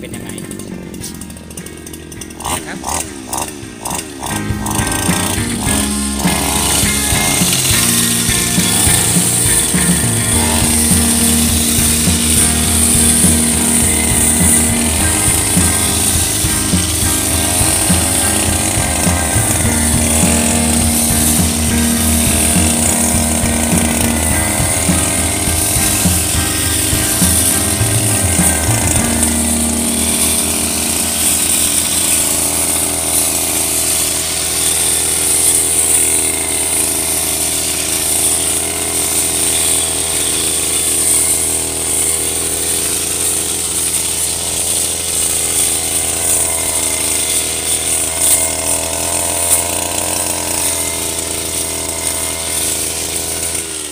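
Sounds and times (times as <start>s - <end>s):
blade cutting grass: 0.0s - 53.9s
brush cutter engine: 0.0s - 53.9s.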